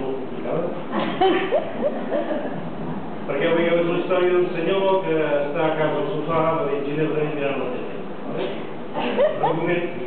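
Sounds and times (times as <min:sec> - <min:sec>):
person laughing: 0:01.0 - 0:02.6, 0:09.0 - 0:09.6.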